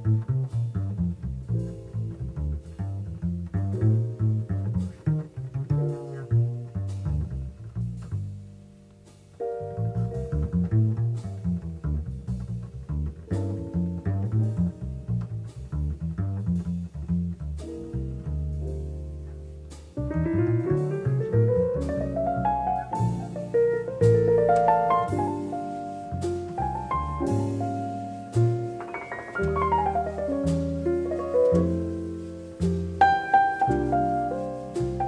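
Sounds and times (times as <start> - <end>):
jazz piano: 0.0 - 35.0
plucked double bass: 0.0 - 35.0.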